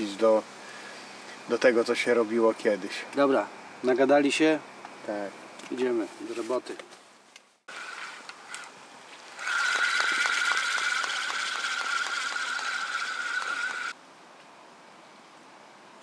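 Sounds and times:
fishing reel gear whirring and clicking: 9.4s - 13.9s.

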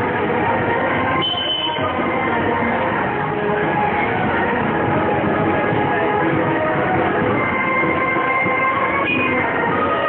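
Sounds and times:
crowd din: 0.0s - 10.0s
loud street procession music: 0.0s - 10.0s.

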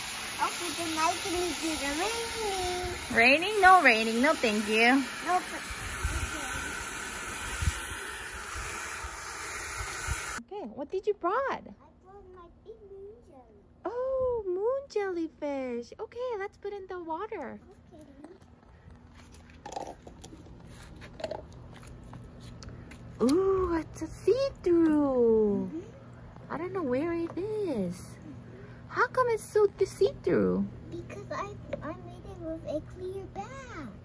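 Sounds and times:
hose water splashing: 0.0s - 10.4s.

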